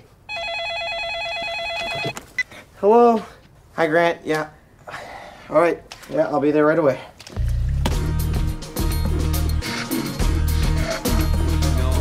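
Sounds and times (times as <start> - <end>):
electronic telephone ringing: 0.3 - 2.2.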